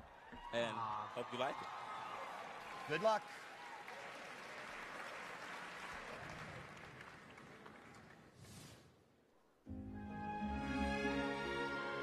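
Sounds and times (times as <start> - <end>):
audience applauding: 0.3 - 8.4.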